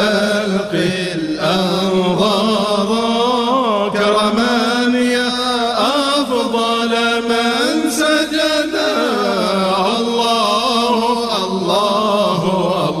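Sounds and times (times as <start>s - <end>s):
person chanting long ornamented notes: 0.0s - 13.0s.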